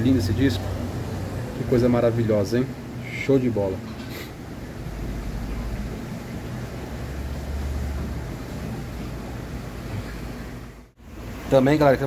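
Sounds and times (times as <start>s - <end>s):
aquarium equipment rumble and hiss: 0.0s - 12.0s.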